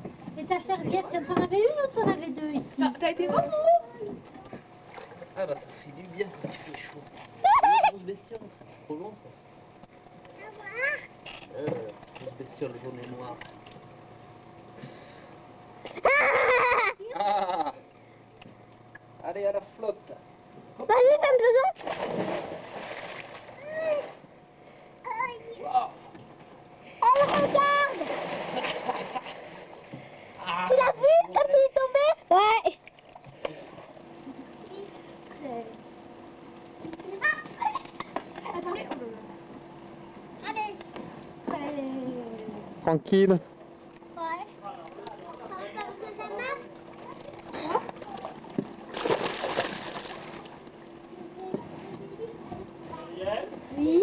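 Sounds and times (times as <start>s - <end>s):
churning sloshing water: 3.2s - 7.4s, 21.7s - 24.4s, 26.1s - 32.0s, 43.5s - 52.4s
splash into swimming pool: 21.8s - 23.5s, 27.1s - 29.2s, 48.9s - 50.4s
splash of diver into pool: 48.9s - 50.3s.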